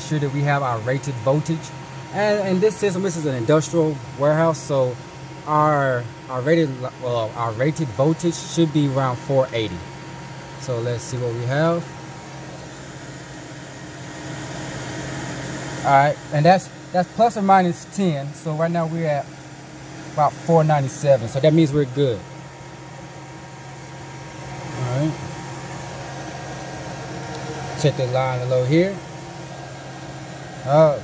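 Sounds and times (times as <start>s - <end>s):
cooling fans and machinery humming: 0.0s - 31.0s
person speaking: 30.6s - 31.0s.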